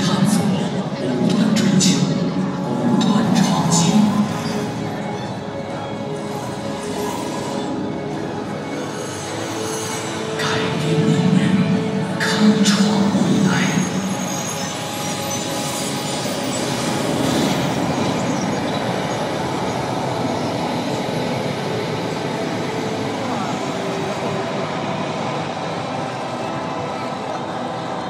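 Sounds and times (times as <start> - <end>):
rushing rumbling film soundtrack: 0.0 - 28.0.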